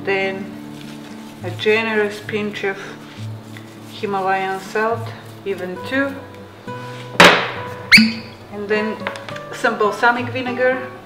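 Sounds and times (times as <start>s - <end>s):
soft background music: 0.0s - 11.0s
kitchenware knocking on counter: 7.2s - 7.6s.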